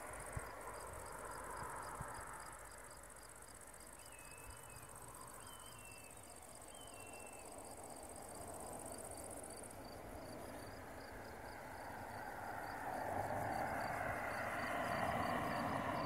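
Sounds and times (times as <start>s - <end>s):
insects chirping: 0.0s - 16.0s.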